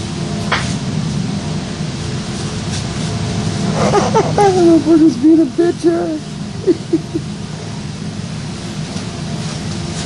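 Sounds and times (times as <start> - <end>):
constant hiss: 0.0 - 10.0
motor humming: 3.5 - 7.2.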